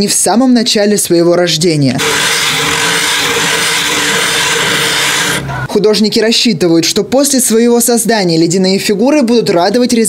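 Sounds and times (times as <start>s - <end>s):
rasp scraping ice: 2.0s - 5.7s.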